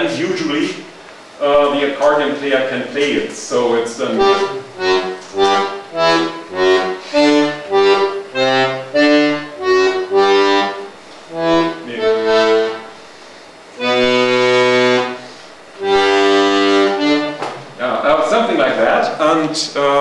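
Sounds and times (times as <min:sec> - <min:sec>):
accordion playing: 0:03.6 - 0:17.6.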